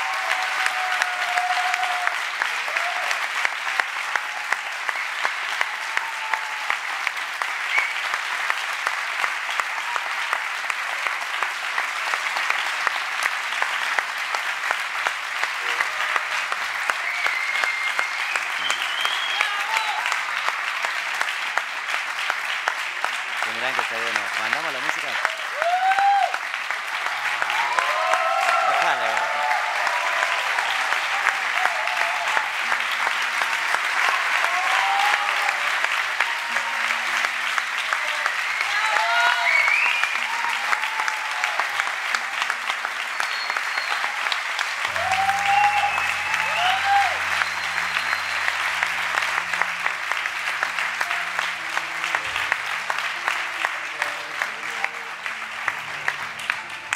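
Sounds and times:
whoops and cheers: 0.0 - 8.2, 9.5 - 10.4, 15.6 - 20.2, 25.2 - 37.2, 37.8 - 49.6
audience applauding: 0.0 - 56.9.

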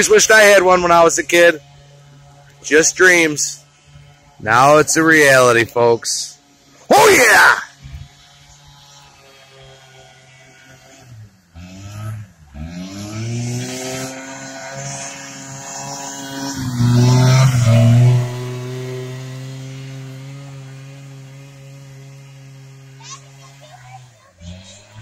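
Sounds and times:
snowmobile engine running: 0.0 - 25.0.

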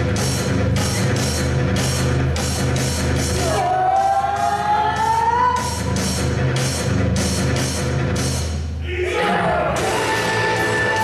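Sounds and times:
rock dance music: 0.0 - 11.0.

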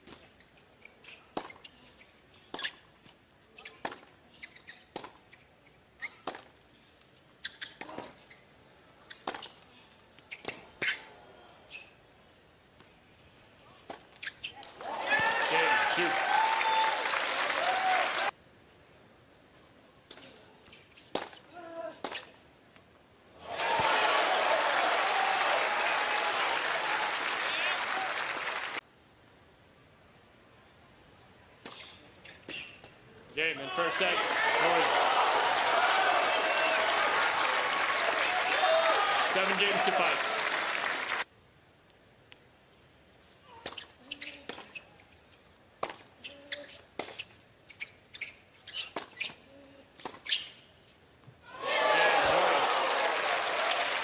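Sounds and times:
shoe squeaking on court: 0.0 - 6.6, 7.2 - 12.9, 13.6 - 14.8, 20.1 - 22.5, 31.6 - 33.1, 43.2 - 51.3.

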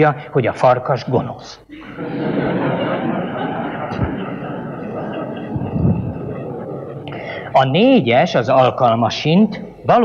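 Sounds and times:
audience laughing: 1.7 - 8.4.

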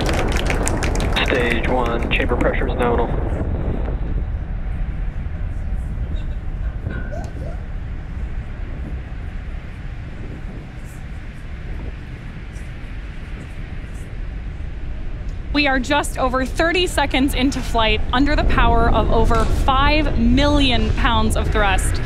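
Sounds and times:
rocket engines roaring: 0.0 - 22.0.

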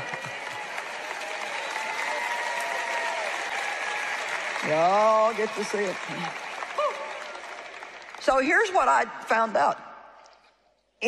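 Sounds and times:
studio audience applauding: 0.0 - 9.1.

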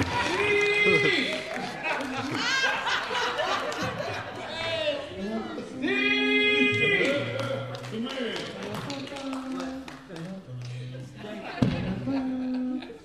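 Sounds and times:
voices in echoing hall: 0.0 - 13.0.

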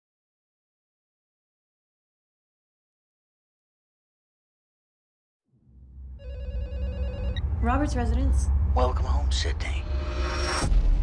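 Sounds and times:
telephone ringing: 6.2 - 7.6.

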